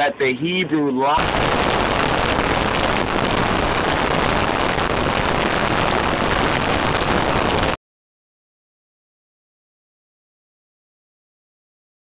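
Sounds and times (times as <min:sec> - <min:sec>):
static hiss: 0:00.0 - 0:07.8.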